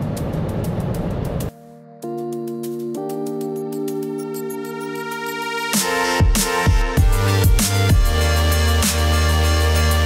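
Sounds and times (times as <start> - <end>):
car cabin road and wind noise: 0.0 - 1.5
held synthesizer chord: 1.5 - 10.0.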